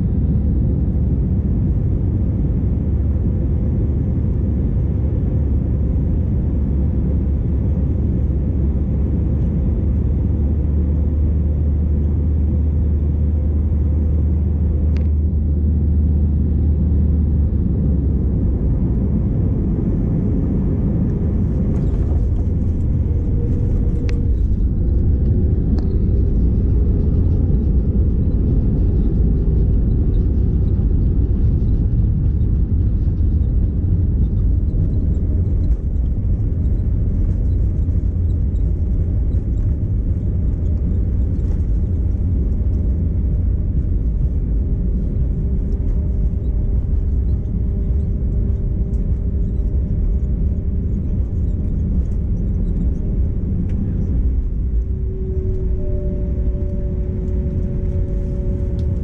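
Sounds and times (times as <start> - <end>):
low rumble inside aircraft cabin: 0.0 - 59.0.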